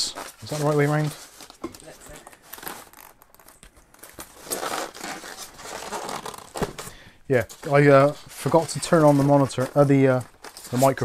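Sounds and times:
foam packing rubbing and clicking: 0:00.0 - 0:11.0
plastic bags crinkling: 0:00.0 - 0:11.0.

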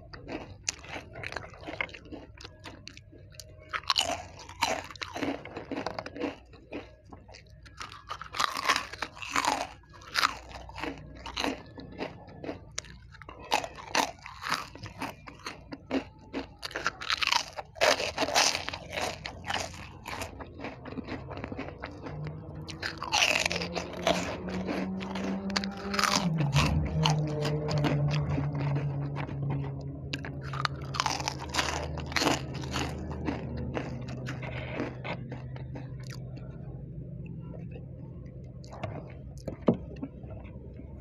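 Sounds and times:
crunching snacks: 0:00.0 - 0:36.6, 0:38.6 - 0:39.6
quiet chewing: 0:00.0 - 0:41.0.

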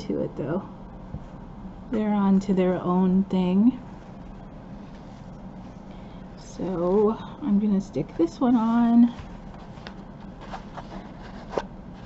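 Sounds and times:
low room hum: 0:00.0 - 0:12.0
fabric rustling: 0:08.5 - 0:12.0.

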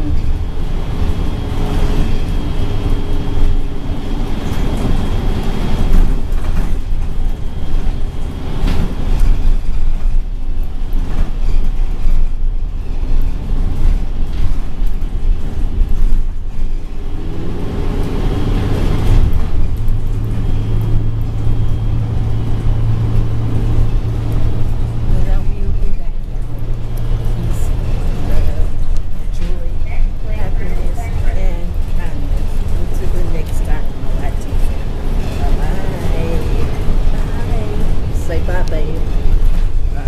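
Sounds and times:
bus engine and road rumble: 0:00.0 - 0:40.0
low engine hum: 0:00.0 - 0:40.0.

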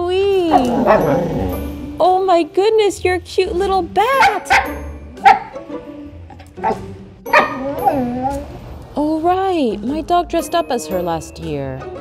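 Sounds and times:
dog barking: 0:04.2 - 0:05.6, 0:06.6 - 0:07.9.

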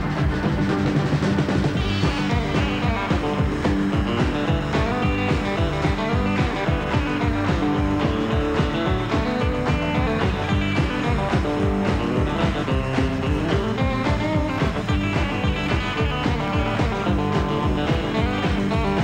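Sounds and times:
electric guitar: 0:00.0 - 0:19.0
rockabilly band playing: 0:00.0 - 0:19.0.

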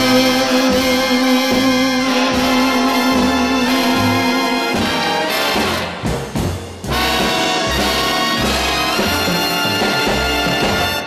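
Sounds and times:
brass big band music: 0:00.0 - 0:11.0.

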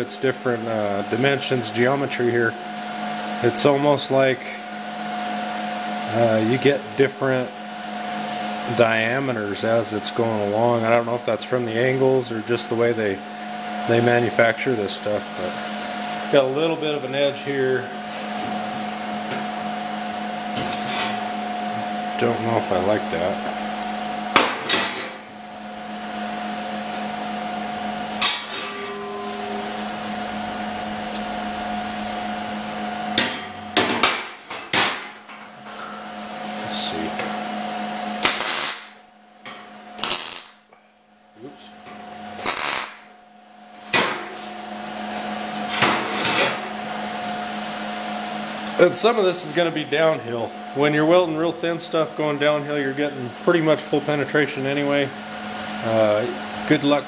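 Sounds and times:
fan-like machine hum with whine: 0:00.0 - 0:57.0
metal tubes scraping and clinking: 0:28.2 - 0:31.3
welding arc crackle: 0:38.2 - 0:39.0, 0:40.0 - 0:40.6, 0:42.4 - 0:43.0.

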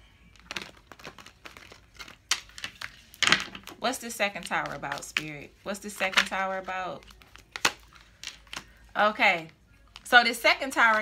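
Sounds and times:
cards being shuffled by hand: 0:00.3 - 0:11.0.

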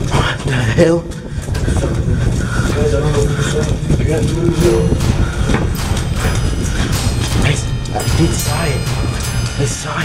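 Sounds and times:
footsteps running on hard floor: 0:00.0 - 0:09.9
person breathing hard: 0:05.0 - 0:07.2.

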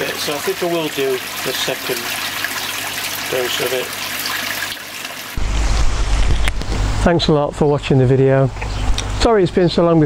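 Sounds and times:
pond water trickling: 0:00.0 - 0:05.7
wind rumble on microphone: 0:05.4 - 0:07.1.

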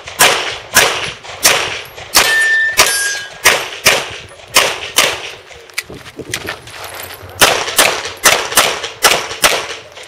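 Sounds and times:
handgun shots with echo: 0:00.0 - 0:05.4, 0:07.4 - 0:10.0.

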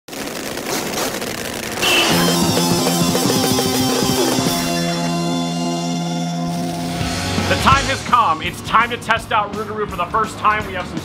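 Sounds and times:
rushing noise: 0:00.1 - 0:08.5
short high tone: 0:01.8 - 0:07.9
rock music: 0:01.8 - 0:11.0.

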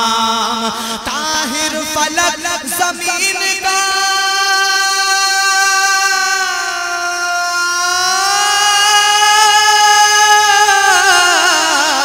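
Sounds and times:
man singing long wordless note: 0:00.0 - 0:12.0.

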